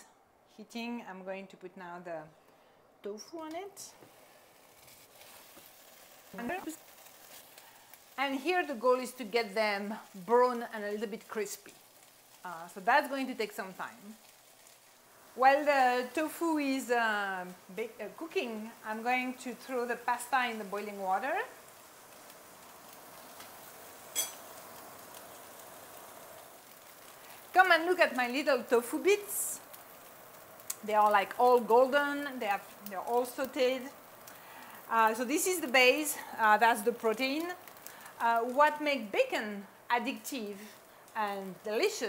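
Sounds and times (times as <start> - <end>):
tofu sizzling in frying pan: 3.5 - 42.0.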